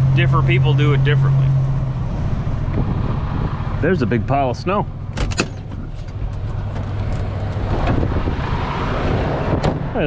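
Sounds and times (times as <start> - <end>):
truck diesel engine rumble: 0.0 - 10.0.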